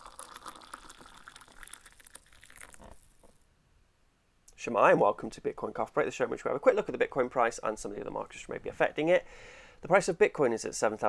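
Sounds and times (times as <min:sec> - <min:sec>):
liquid pouring into a cup: 0:00.0 - 0:03.4.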